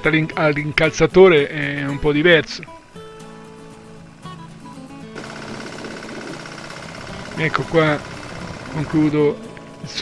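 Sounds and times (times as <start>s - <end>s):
background music: 0.0s - 10.0s
tractor engine running: 5.2s - 10.0s.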